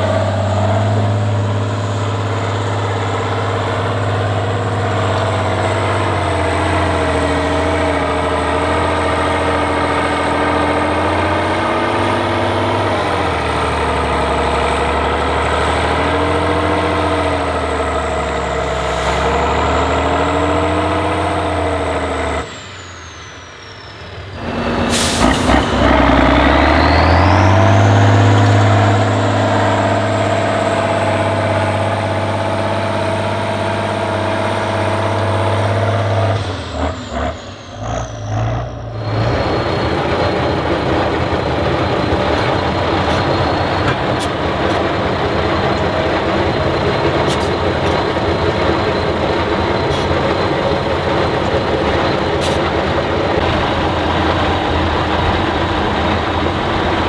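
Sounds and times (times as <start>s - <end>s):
truck diesel engine straining: 0.0s - 57.0s
high whistle: 22.4s - 25.8s.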